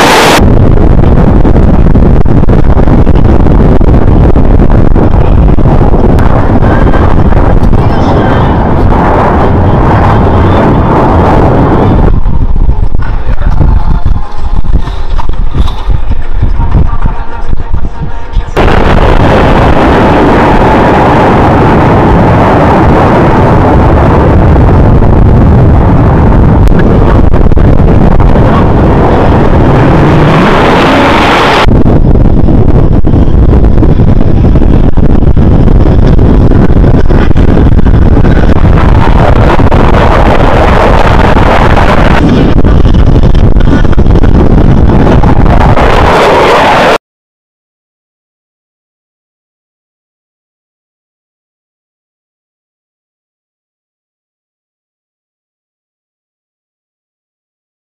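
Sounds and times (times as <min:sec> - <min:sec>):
jets roaring past: 0:00.0 - 0:00.5, 0:25.8 - 0:31.7
jet engine rumbling and crackling: 0:00.0 - 0:17.9, 0:18.6 - 0:47.0
wind on microphone: 0:00.0 - 0:47.0.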